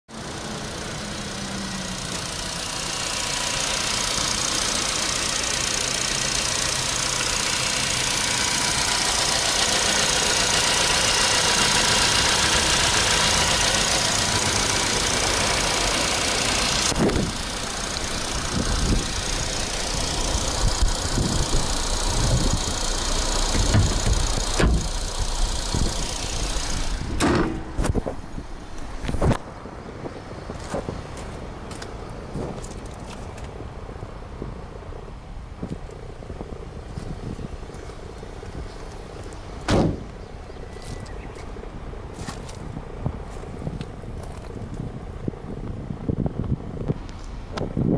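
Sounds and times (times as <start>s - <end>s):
car engine idling: 0.1s - 47.8s
uneven thumps: 23.4s - 25.1s, 26.8s - 28.2s, 39.7s - 40.1s.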